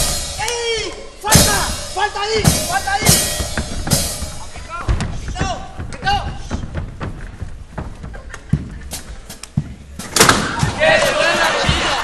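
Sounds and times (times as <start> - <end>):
bodies thudding on stage floor: 2.5 - 12.0
people shouting: 10.4 - 12.0.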